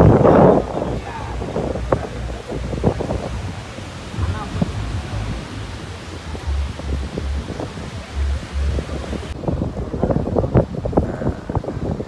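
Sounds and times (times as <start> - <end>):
breaking sea surf: 0.0 - 12.0
indistinct background voices: 0.0 - 12.0
wind buffeting microphone: 0.0 - 12.0.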